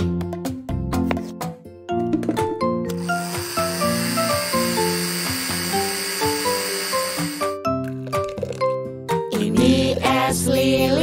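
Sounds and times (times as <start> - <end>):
kitchen blender running: 2.9 - 7.6
instrumental children's music: 8.7 - 11.0.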